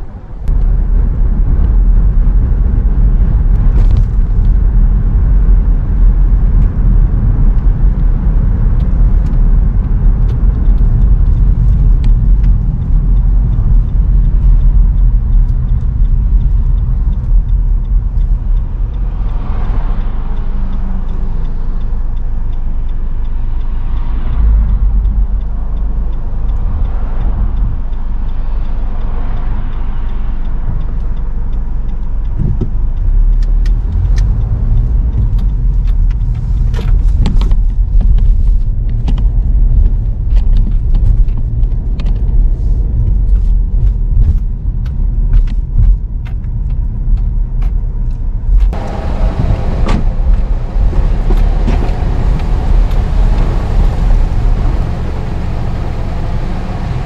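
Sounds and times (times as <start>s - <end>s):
car cabin road rumble: 0.0s - 57.0s.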